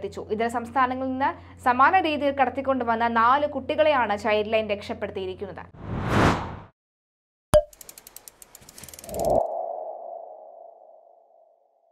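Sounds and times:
quick run of ticks: 7.7s - 9.4s.

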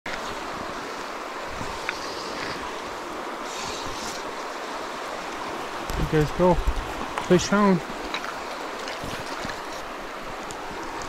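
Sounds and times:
river rushing over stones: 0.1s - 11.0s.

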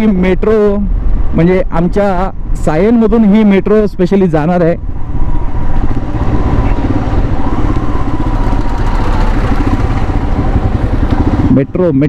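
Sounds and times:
motorcycle engine running: 5.0s - 12.0s.

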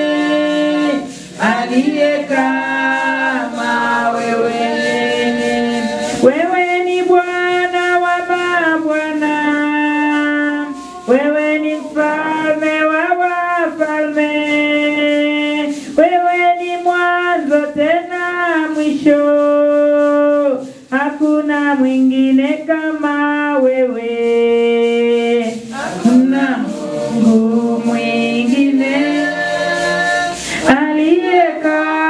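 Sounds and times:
woman singing worship song: 0.0s - 32.0s.

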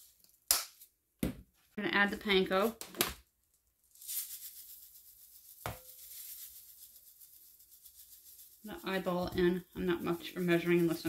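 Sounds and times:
breadcrumbs pouring into bowl: 4.0s - 11.0s.

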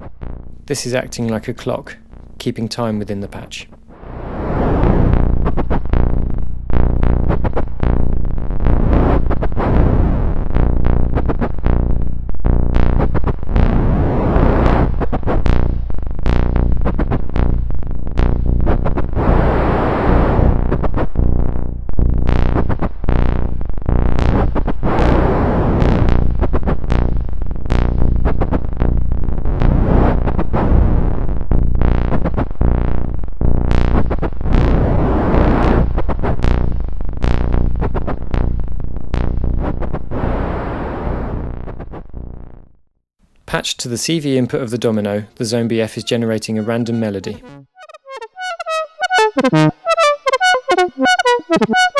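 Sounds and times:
noisy filter sweeps: 0.0s - 42.5s, 45.8s - 51.9s
sharp synthesized noise hits: 46.5s - 51.9s
synthesizer low drone: 46.6s - 51.9s.

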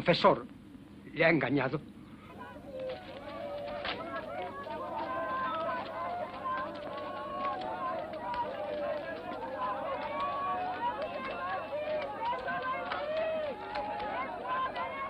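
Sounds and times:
crowd voices talking and calling: 1.8s - 15.0s.

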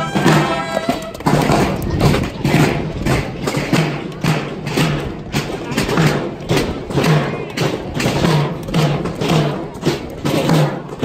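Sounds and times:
drums beating marching rhythm: 0.0s - 11.0s
marching band playing: 0.0s - 11.0s.

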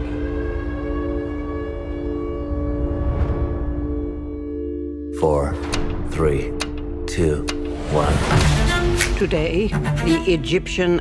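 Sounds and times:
low drone of steady tones: 0.0s - 5.6s.

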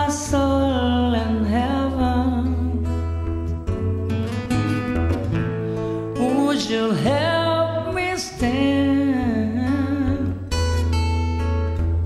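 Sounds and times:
acoustic guitar chord strummed: 0.0s - 12.0s.

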